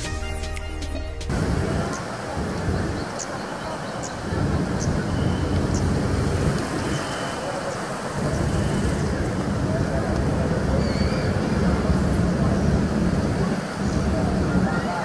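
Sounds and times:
faint voices: 1.3 - 15.0
road traffic rumble: 1.3 - 15.0.

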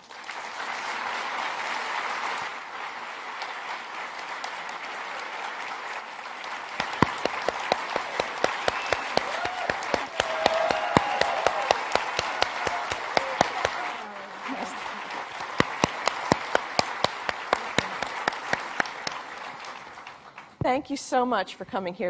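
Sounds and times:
audience applauding: 0.0 - 20.6
sharp single claps: 6.8 - 13.9, 15.4 - 19.2.

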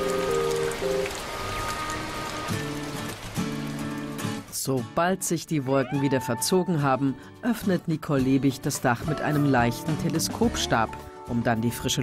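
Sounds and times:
rain on glass roof: 0.0 - 4.8
background music of held notes: 0.0 - 12.0.

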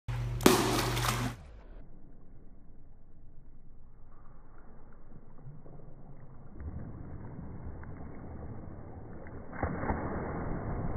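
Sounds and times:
dog splashing into water: 0.4 - 1.4.

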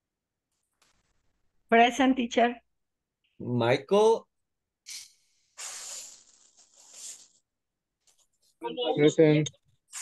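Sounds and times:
breathy hissing noise: 4.9 - 7.4.

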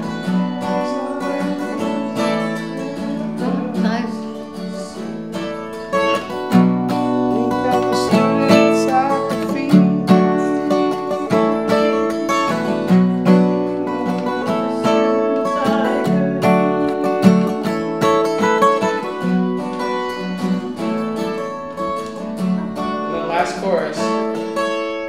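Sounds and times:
acoustic guitar strumming: 0.0 - 25.0.

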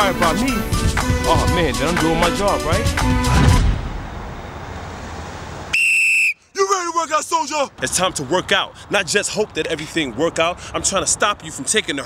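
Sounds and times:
man speaking: 0.0 - 3.0, 6.5 - 12.0
whistle blast: 5.7 - 6.7.

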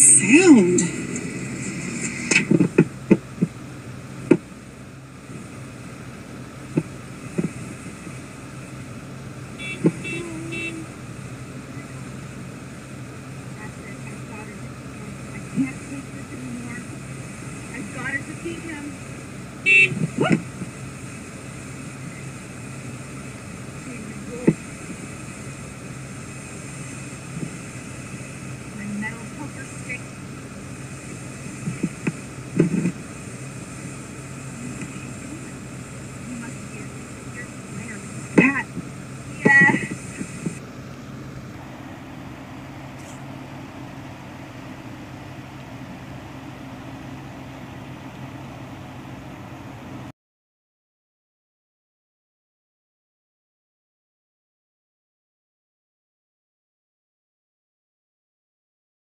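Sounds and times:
steady hum: 0.0 - 50.1.

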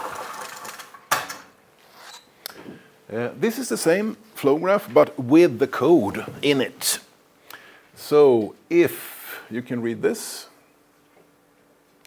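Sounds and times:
projector screen roller rattling: 0.0 - 1.5.

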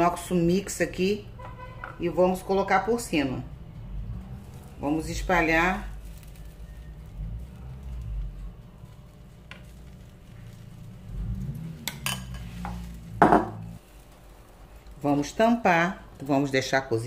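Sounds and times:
metal ladle scraping frying pan: 11.6 - 13.9.

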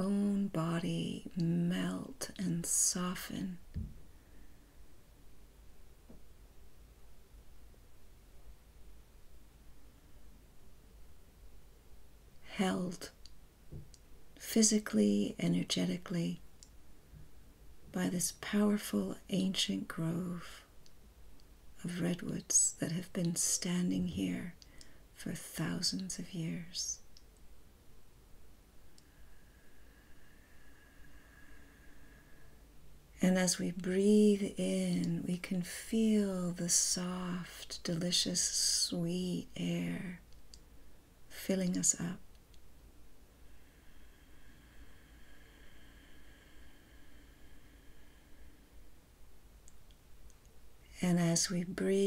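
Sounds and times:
faint low hum: 0.0 - 52.0
faint thin steady tone: 0.0 - 52.0
faint small clicks: 13.2 - 14.1, 16.5 - 16.8, 20.8 - 21.5, 24.6 - 25.0, 27.0 - 27.5, 28.9 - 29.1, 40.3 - 40.7, 42.3 - 42.7, 49.6 - 50.6.

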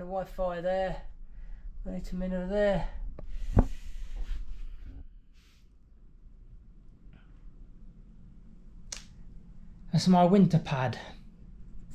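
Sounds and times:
man speaking: 0.0 - 1.1, 9.9 - 11.2
faint low hum: 0.0 - 11.9.

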